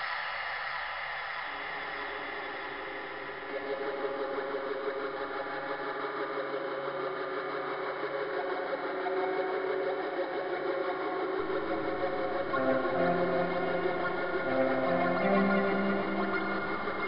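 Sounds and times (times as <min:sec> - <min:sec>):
synthesizer buzzing drone: 0:11.4 - 0:17.0.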